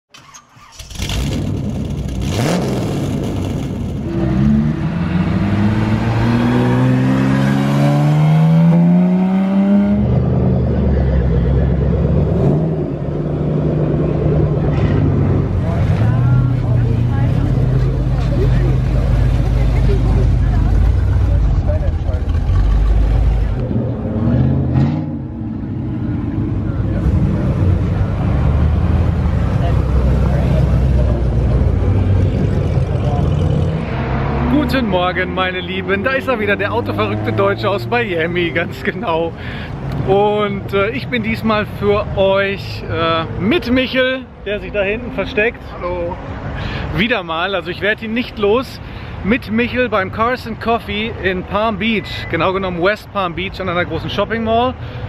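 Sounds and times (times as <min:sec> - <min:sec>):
car engine accelerating: 0:00.6 - 0:39.1
crowd voices: 0:13.8 - 0:24.6, 0:25.2 - 0:39.2.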